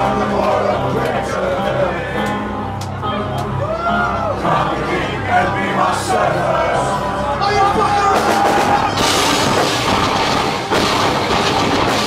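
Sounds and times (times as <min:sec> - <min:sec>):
drums: 0:00.0 - 0:12.0
keyboards: 0:00.0 - 0:12.0
distorted electric guitars: 0:04.5 - 0:12.0.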